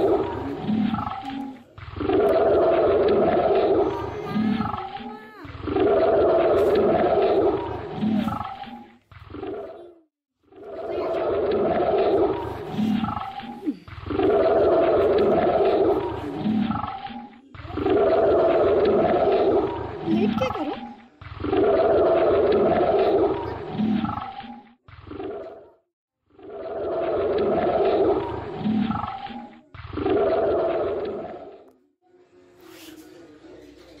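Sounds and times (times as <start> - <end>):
large animal roaring: 0.0 - 8.7, 10.6 - 24.3.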